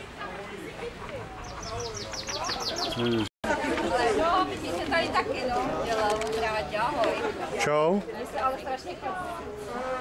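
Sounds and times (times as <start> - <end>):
people chatting outdoors: 0.0 - 10.0.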